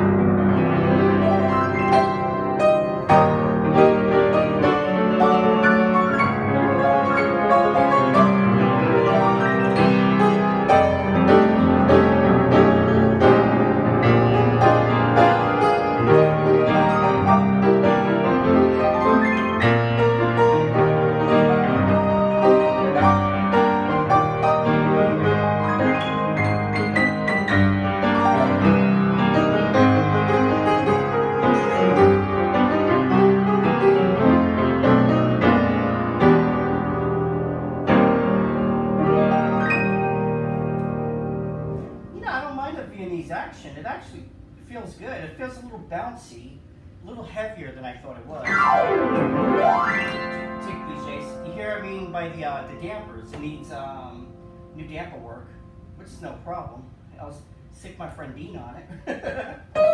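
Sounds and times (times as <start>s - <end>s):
grand piano playing chords: 0.0s - 46.1s, 48.2s - 58.5s, 59.6s - 59.9s.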